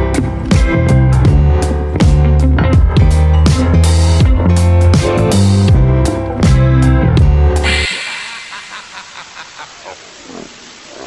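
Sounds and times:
distorted warbles: 7.6s - 10.2s
television static hiss: 7.7s - 11.0s.

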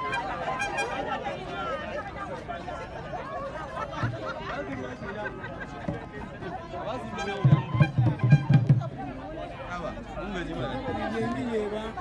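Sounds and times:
voices chattering: 0.0s - 12.0s
low loud drum beats: 7.3s - 9.2s.

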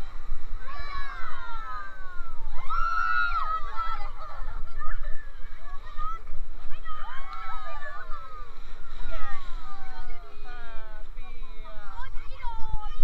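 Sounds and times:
people shrieking and whooping: 0.0s - 5.9s, 7.0s - 10.8s.

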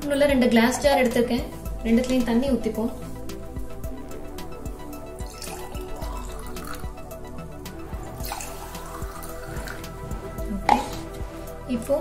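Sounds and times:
background music: 0.0s - 12.0s
water pouring into glass jar: 5.2s - 7.1s, 8.0s - 9.9s.

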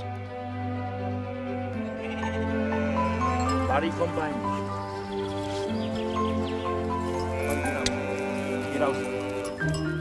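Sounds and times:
background music with held notes: 0.0s - 10.0s
sheep bleating: 1.4s - 3.7s, 7.1s - 9.7s.

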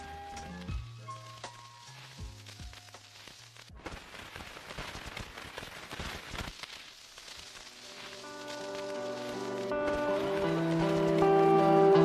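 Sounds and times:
soft crackling noise with clicks: 0.0s - 12.0s
lo-fi beat music: 8.2s - 12.0s.

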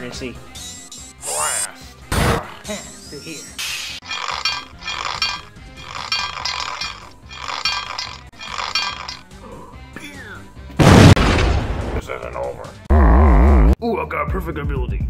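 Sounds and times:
explosion sound effect: 10.8s - 12.0s.

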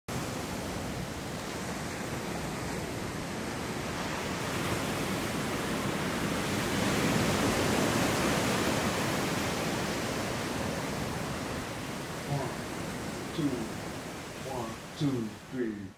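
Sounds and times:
ocean surf washing on beach: 0.1s - 15.9s.

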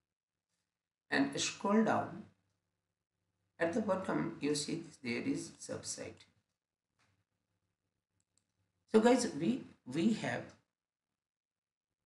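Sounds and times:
man speaking: 3.6s - 6.2s, 9.0s - 10.6s.

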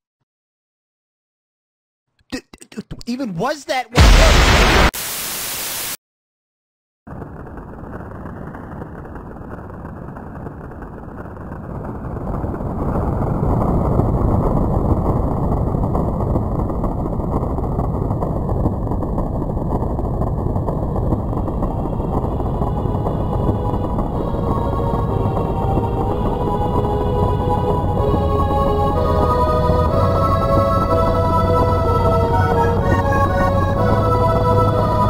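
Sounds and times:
tv static hiss: 4.0s - 6.0s
low rumble: 7.1s - 35.0s.

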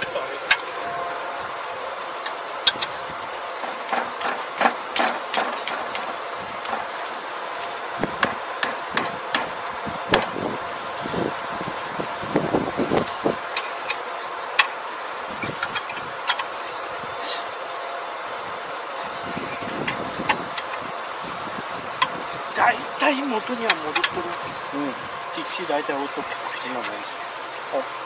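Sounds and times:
steady mechanical hum: 0.0s - 28.0s.

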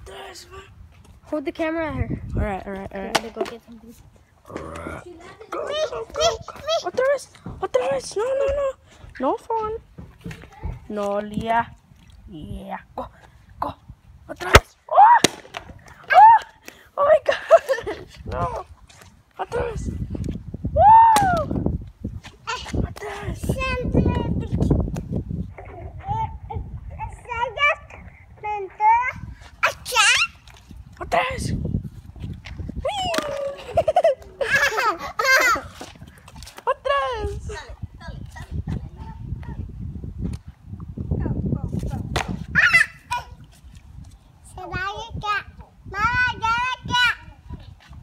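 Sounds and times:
plastic bottle hitting asphalt: 3.0s - 3.6s, 14.5s - 15.8s
child calling high-pitched: 5.2s - 7.0s, 25.7s - 30.4s, 42.6s - 43.4s
toddler babbling and squealing: 5.2s - 7.0s, 25.6s - 30.4s, 42.5s - 43.5s.

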